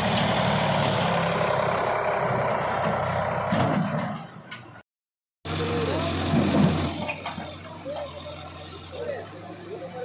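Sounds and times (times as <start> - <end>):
diesel engine running: 0.0 - 4.4, 5.5 - 10.0.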